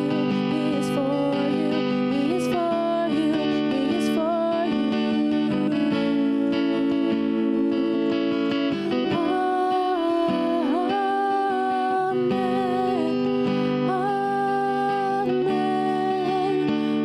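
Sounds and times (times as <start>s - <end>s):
acoustic guitar: 0.0s - 17.0s
woman singing slow song: 0.0s - 17.0s.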